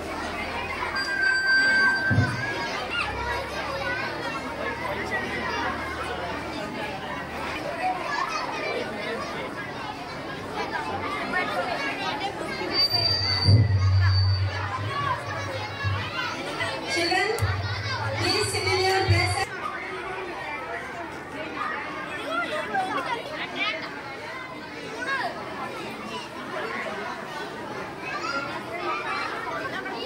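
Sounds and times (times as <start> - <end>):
children chattering: 0.0 - 30.0.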